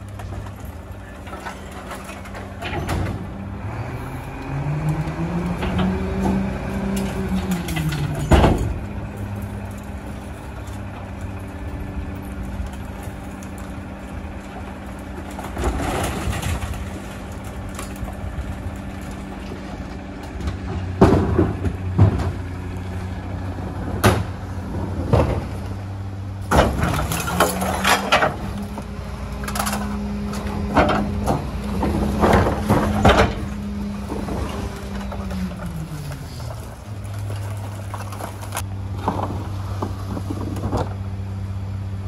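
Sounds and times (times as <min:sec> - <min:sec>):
garbage truck diesel engine: 0:00.0 - 0:42.0.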